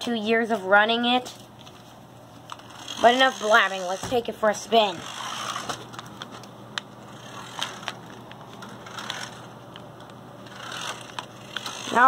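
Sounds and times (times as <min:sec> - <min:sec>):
toy truck motor whirring: 0:02.5 - 0:05.9, 0:07.1 - 0:09.5, 0:10.4 - 0:12.0.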